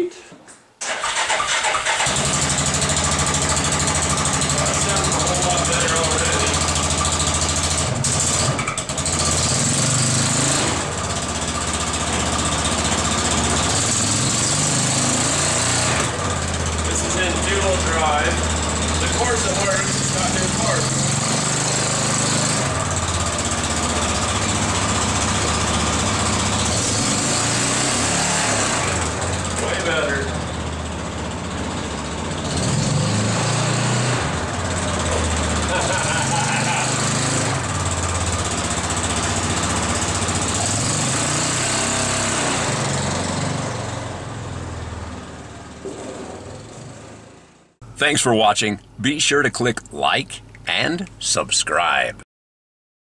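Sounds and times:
utility vehicle engine running: 0.8 - 51.2.

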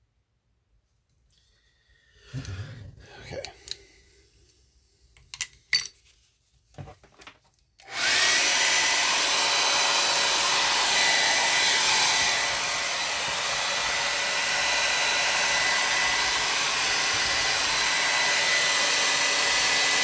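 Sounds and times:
hair dryer blowing: 7.8 - 20.0.

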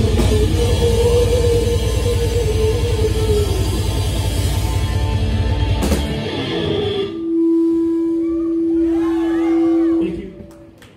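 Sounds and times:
electric guitar feedback tone: 0.0 - 10.5.

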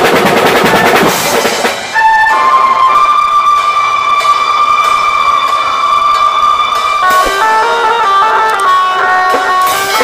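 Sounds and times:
faint drums: 0.0 - 10.0
long high held note: 2.0 - 10.0.

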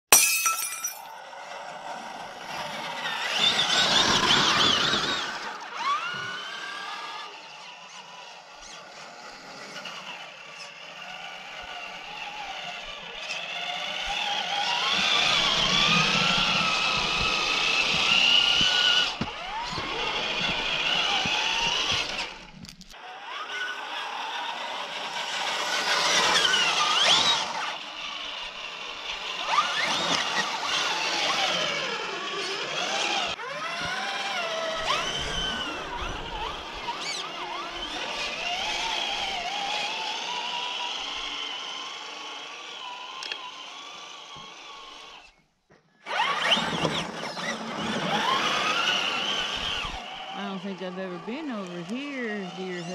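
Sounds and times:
electric motor and gears whining: 1.2 - 52.9.

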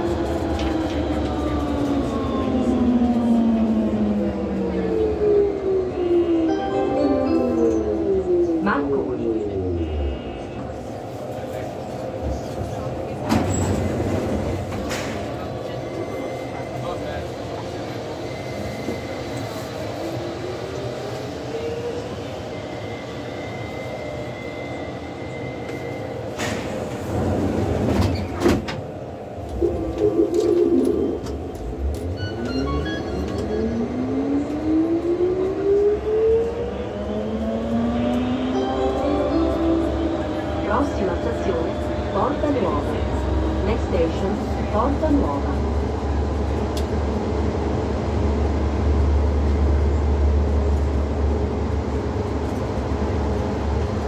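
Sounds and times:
metro train humming: 0.0 - 54.0.

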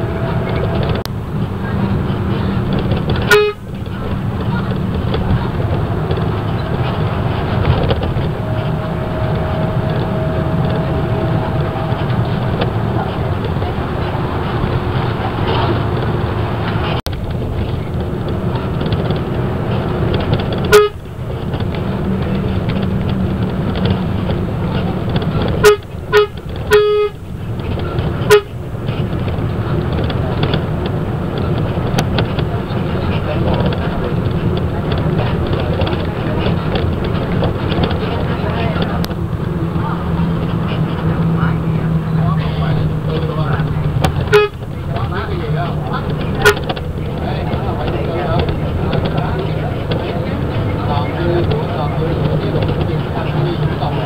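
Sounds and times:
bus horn toots: 0.0 - 17.1, 17.7 - 54.0
bus engine and road noise: 0.0 - 54.0.

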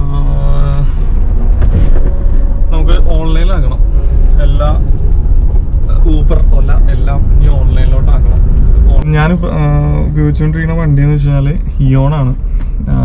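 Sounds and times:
man talking: 0.0 - 1.0, 5.8 - 13.0
car cabin road rumble: 0.0 - 13.0.

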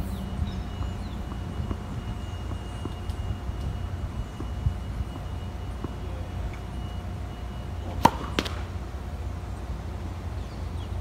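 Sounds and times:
tennis ball bouncing on hard court: 0.7 - 1.9, 7.9 - 8.6
tennis ball struck by racket: 7.9 - 8.7.

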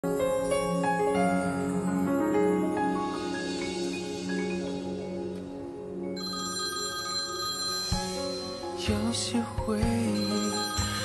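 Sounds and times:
soft background music: 0.0 - 11.0
phone ringing: 6.2 - 9.2, 10.0 - 11.0.

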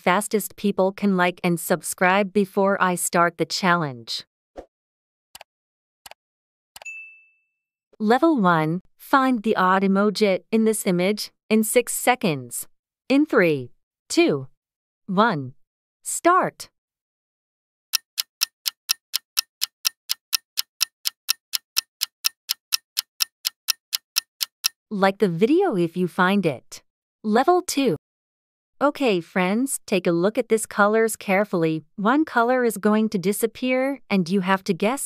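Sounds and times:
bright bell ding: 6.8 - 7.6
clock ticking: 17.9 - 24.8
mouse click: 18.0 - 24.8.

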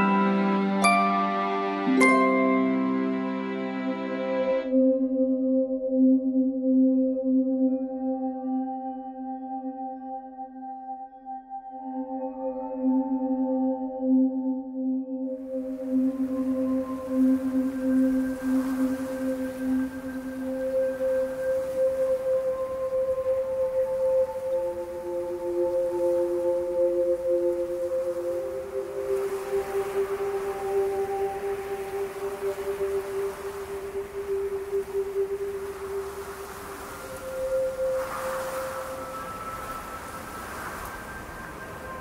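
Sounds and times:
slow music of long held notes: 0.0 - 42.0.

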